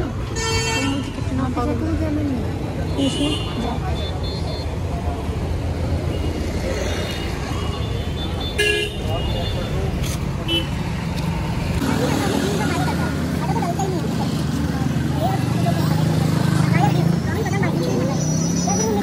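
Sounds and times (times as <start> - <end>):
road traffic: 0.0 - 19.0
people talking: 0.8 - 5.8, 11.8 - 19.0
vehicle horn toot: 7.7 - 9.7.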